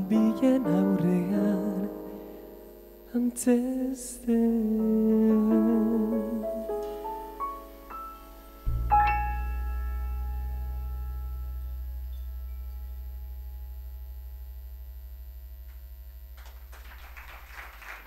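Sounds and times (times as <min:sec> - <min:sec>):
electric keyboard low chord: 0:00.0 - 0:16.8
audience applause: 0:16.4 - 0:18.0.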